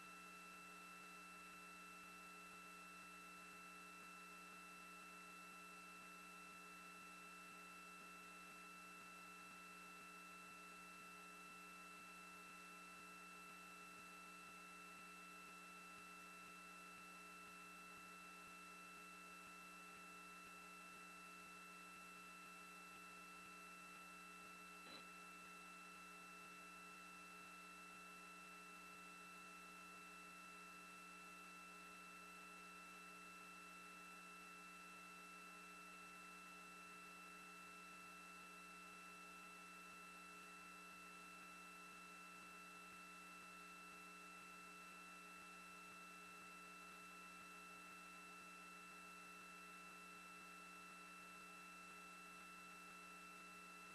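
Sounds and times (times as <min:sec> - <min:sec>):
faint steady hum: 0:00.0 - 0:53.9.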